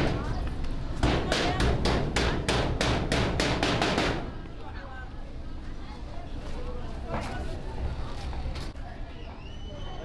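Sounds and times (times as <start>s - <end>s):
hammer striking sheet-metal door: 1.0s - 4.4s.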